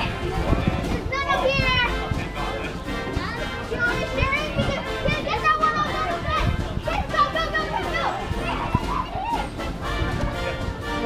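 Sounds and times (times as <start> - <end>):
background music: 0.0 - 11.0
children calling and chattering: 0.0 - 11.0.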